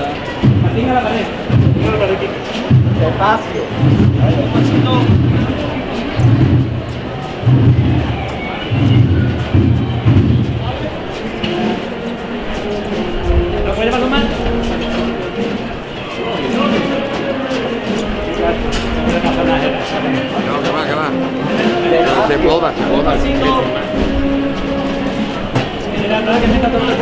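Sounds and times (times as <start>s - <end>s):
brass band playing a march: 0.0s - 27.0s
voices talking: 0.0s - 27.0s.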